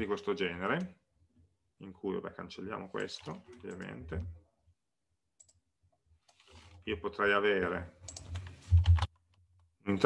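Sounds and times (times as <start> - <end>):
person speaking: 1.8 - 4.5.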